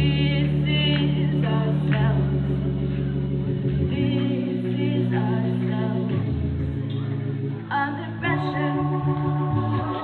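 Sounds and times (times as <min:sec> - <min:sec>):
held low chords: 0:00.0 - 0:10.0.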